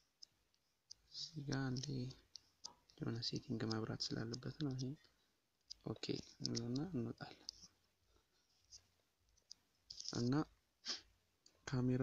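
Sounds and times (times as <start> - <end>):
person speaking: 0.9 - 7.8, 8.6 - 12.0
faint sharp clicks: 5.6 - 7.7.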